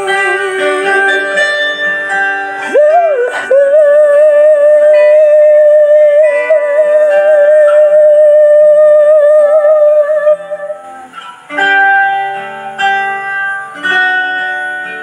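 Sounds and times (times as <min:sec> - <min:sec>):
person singing long held note: 0:00.0 - 0:11.4
ballad backing track with guitar: 0:00.0 - 0:15.0.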